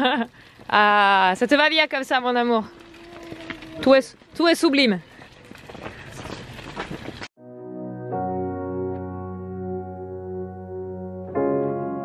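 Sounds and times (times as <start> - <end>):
pushchair wheels rolling on asphalt: 0.0 - 7.3
footsteps on asphalt: 0.3 - 7.3.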